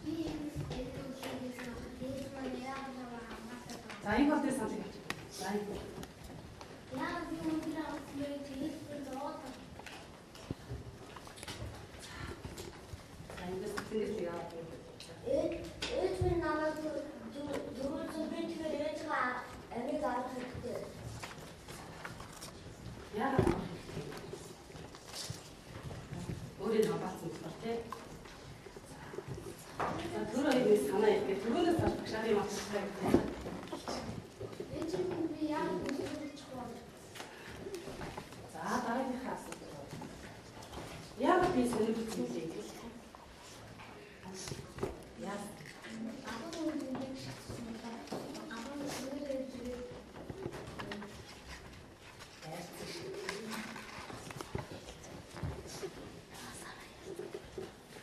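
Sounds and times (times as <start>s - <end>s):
murmur of children's voices: 0.0s - 58.0s.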